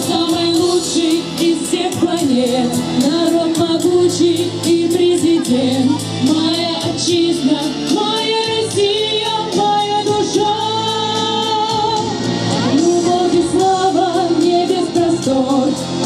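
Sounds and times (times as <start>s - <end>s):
backing track with steady beat: 0.0s - 16.0s
girls singing through microphones: 0.0s - 16.0s.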